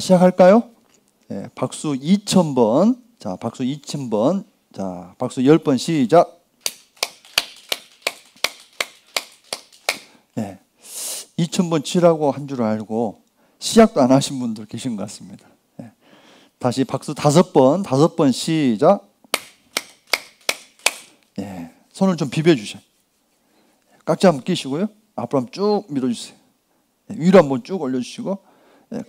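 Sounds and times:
man clapping hands: 6.6s - 10.1s, 19.4s - 21.1s.

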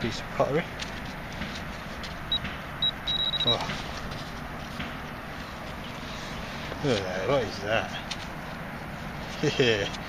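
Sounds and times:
short high beeps: 2.3s - 3.6s.

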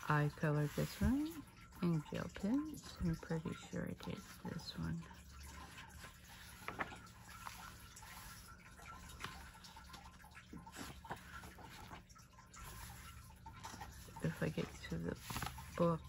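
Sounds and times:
soft ticks of pages: 0.0s - 16.0s
paper rustling: 5.6s - 16.0s.

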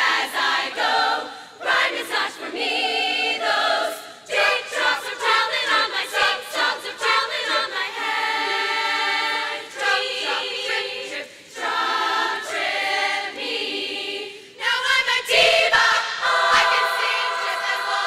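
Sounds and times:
women's choir singing a cappella: 0.0s - 18.0s.

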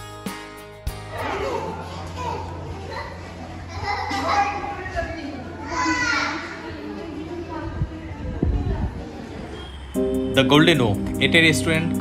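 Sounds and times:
indistinct talk: 1.1s - 9.8s.

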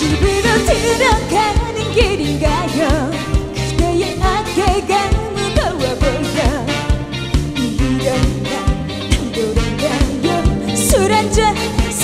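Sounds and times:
woman singing with vibrato: 0.0s - 6.9s, 7.6s - 12.0s
pop backing track with drum beat: 0.0s - 12.0s.

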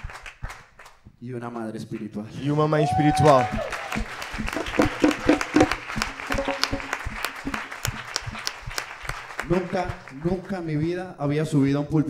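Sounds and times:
hand clapping: 0.0s - 1.6s, 2.4s - 11.0s
audience laughing: 4.2s - 10.5s.

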